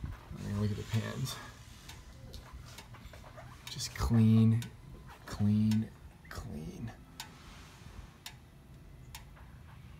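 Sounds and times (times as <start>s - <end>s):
low steady hum: 0.0s - 9.9s.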